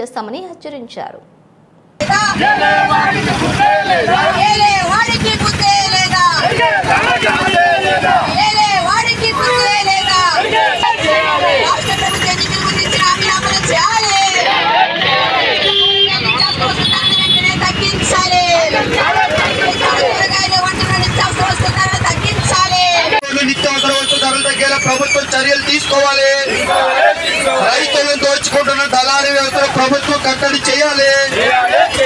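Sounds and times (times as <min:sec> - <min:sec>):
low street noise rumble: 0:00.0 - 0:32.0
woman shouting into a microphone: 0:02.0 - 0:03.2, 0:03.9 - 0:07.2, 0:07.9 - 0:23.2
protesters chanting slogans: 0:02.0 - 0:32.0.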